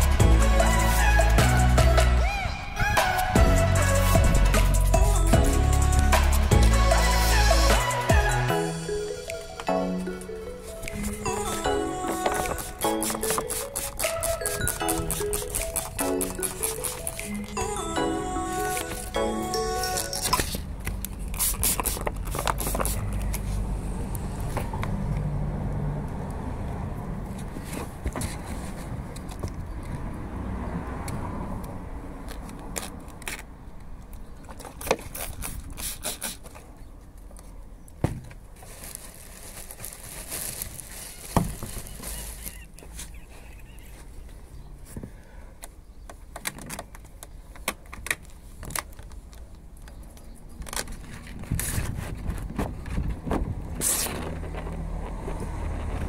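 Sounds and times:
plastic film crinkling: 0:10.6 - 0:17.6, 0:19.8 - 0:23.6, 0:38.5 - 0:43.9.

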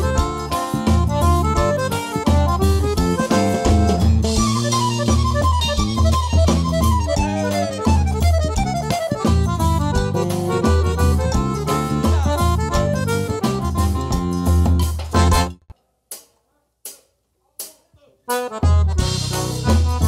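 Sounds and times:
accordion melody: 0:00.0 - 0:15.7, 0:18.3 - 0:20.0
bass: 0:00.0 - 0:15.7, 0:18.4 - 0:20.0
percussion: 0:00.0 - 0:20.0.

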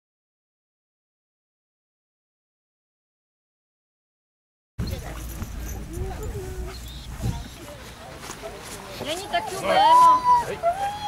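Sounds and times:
wind rumbling on microphone: 0:04.8 - 0:07.8.

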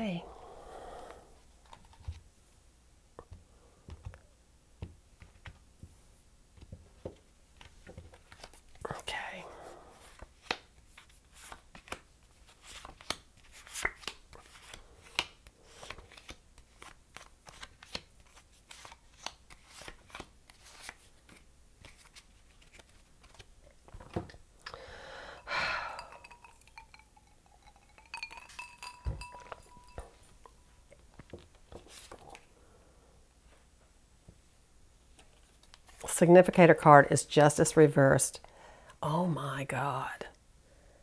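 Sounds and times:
cards clicking into a deck: 0:12.6 - 0:24.1
chimes ringing: 0:25.7 - 0:30.2.

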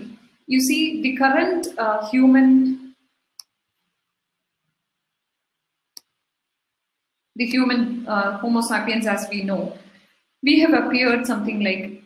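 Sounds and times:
faint mouse clicks: 0:03.4 - 0:03.9, 0:05.9 - 0:06.2.

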